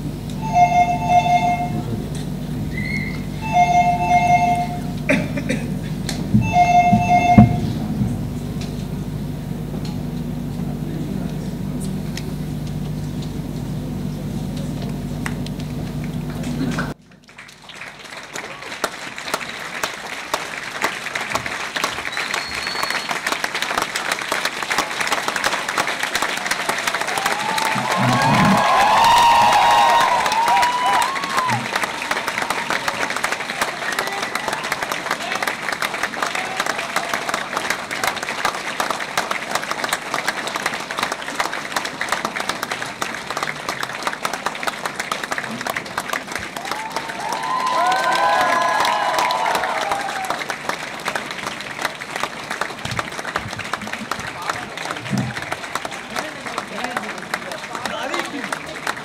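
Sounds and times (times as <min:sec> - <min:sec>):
audience applauding: 0:00.0 - 0:14.0, 0:14.6 - 0:59.0
voices calling out: 0:27.2 - 0:32.1.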